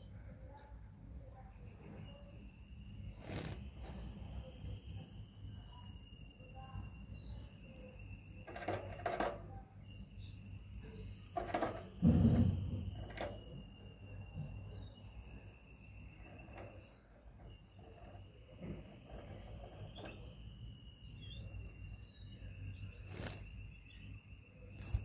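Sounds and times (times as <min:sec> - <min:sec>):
goldfinches chirping: 0:01.4 - 0:25.0.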